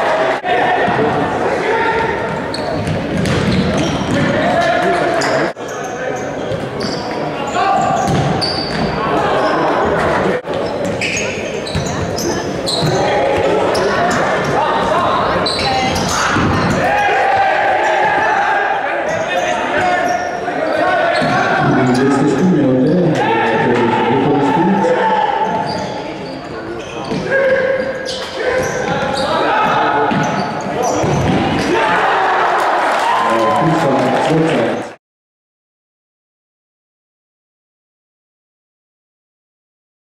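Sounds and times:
shoe squeaks: 2.5 - 4.2, 4.9 - 9.7, 10.6 - 13.1, 15.4 - 16.7, 25.4 - 31.2
ball kicked and bouncing: 2.8 - 4.3, 8.0 - 8.9.

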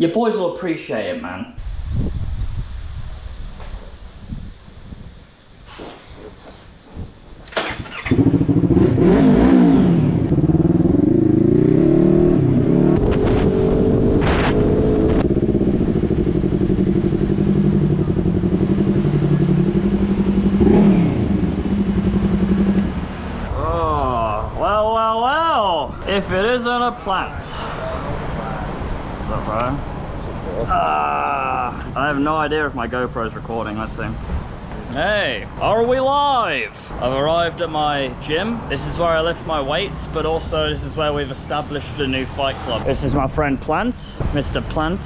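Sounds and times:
steady high hiss: 1.6 - 9.1
motorcycle engine revving: 1.6 - 24.2.

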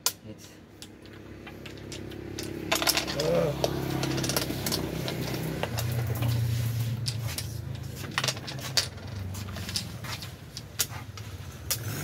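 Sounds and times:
wooden game pieces clacking: 0.0 - 11.9.

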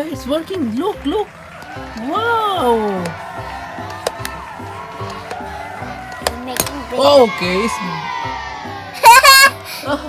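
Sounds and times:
background music with steady beat: 0.0 - 10.0
small balloon popping: 3.8 - 4.4.

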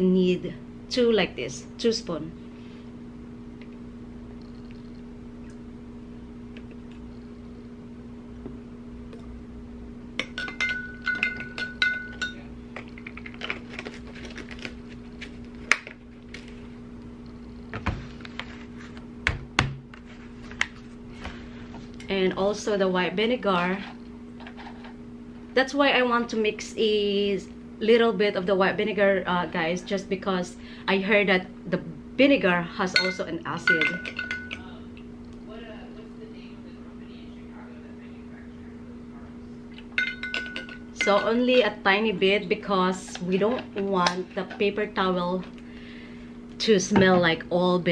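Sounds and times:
steady low hum: 0.0 - 47.9
spoon clinking against glass cup: 10.2 - 12.4, 33.0 - 34.7, 40.0 - 41.3
glass ringing: 10.2 - 12.5, 32.9 - 34.7, 39.9 - 41.4.

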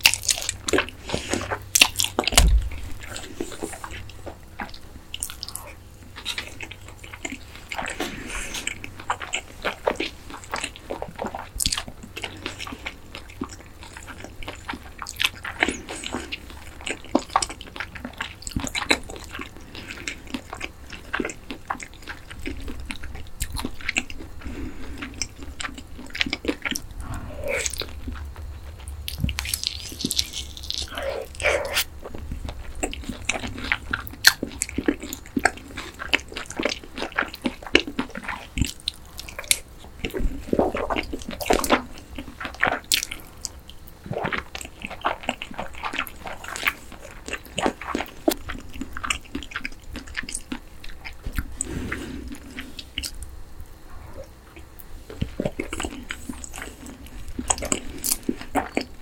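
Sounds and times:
crunchy fried chicken chewing: 0.0 - 59.0.

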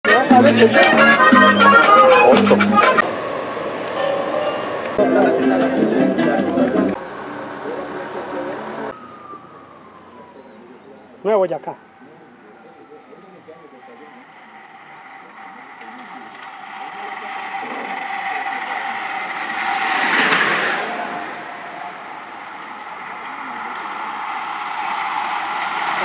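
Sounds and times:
traffic engine and road noise: 0.1 - 26.0
vehicle passing close: 0.6 - 26.0.

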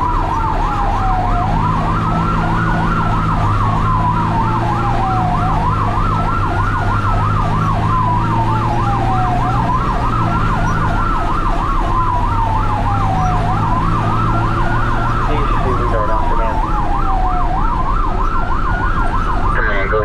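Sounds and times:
ambulance siren wail: 0.0 - 20.0
fast siren yelp: 0.0 - 20.0
vehicle engine running: 0.0 - 20.0.

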